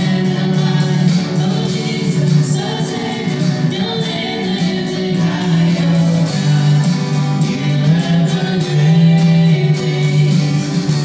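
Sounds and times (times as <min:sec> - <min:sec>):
acoustic guitar: 0:00.0 - 0:11.0
keyboard: 0:00.0 - 0:11.0
man and woman singing: 0:00.0 - 0:11.0.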